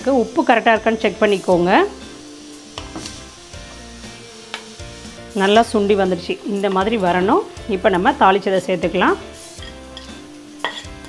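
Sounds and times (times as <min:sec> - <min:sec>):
soft background music: 0:00.0 - 0:11.0
spatula stirring: 0:09.4 - 0:11.0.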